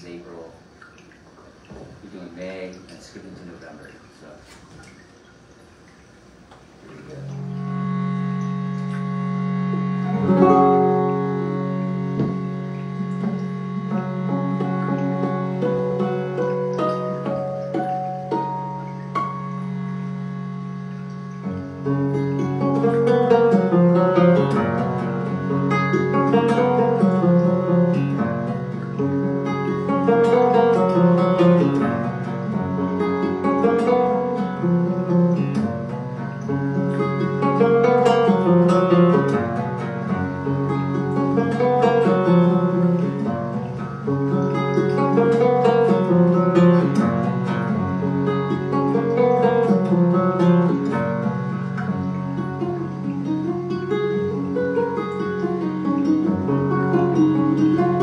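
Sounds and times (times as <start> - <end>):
guitar low drone: 6.9 - 58.0
picked guitar arpeggios: 7.0 - 58.0.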